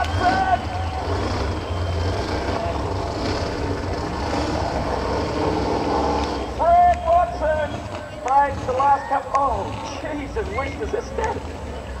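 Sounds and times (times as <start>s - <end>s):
crowd cheering and applause: 0.0s - 9.7s
car engine rumbling at idle: 0.0s - 12.0s.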